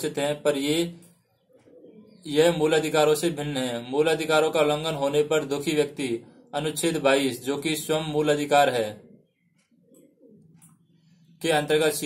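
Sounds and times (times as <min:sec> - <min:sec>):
bird cooing: 0:01.0 - 0:02.4, 0:05.9 - 0:07.0, 0:08.9 - 0:11.4.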